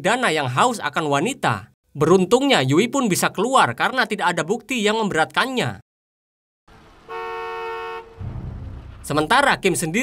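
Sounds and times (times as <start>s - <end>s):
car horn honking: 7.1s - 9.0s
low engine rumble: 8.0s - 9.9s.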